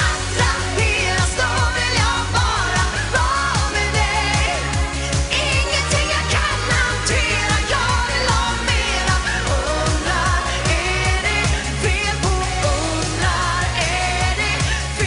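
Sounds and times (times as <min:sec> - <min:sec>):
pop band with dance beat: 0:00.0 - 0:15.0
woman singing into microphone: 0:00.0 - 0:15.0.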